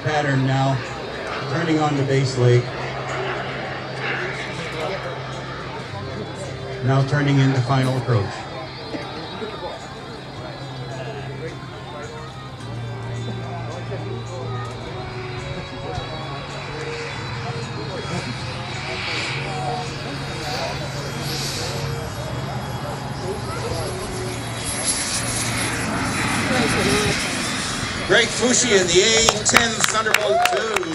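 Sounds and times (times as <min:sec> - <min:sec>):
model jet turbine whine: 0:00.0 - 0:30.9.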